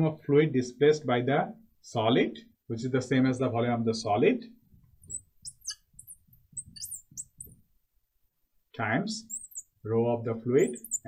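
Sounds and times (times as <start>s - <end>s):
marker squeaking on glass: 5.0s - 7.6s, 9.2s - 9.8s, 10.6s - 11.0s.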